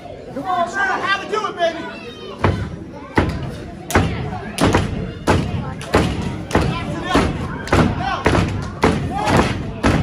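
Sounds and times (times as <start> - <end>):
heavy rhythmic thuds: 2.4 - 10.0.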